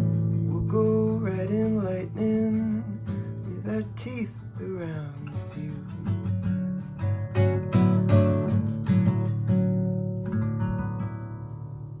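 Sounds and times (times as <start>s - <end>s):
classical guitar plucked chords: 0.0s - 12.0s.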